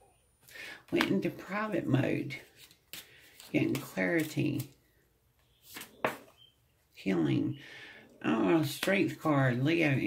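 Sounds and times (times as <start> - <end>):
card swishing from deck: 5.7 - 6.2.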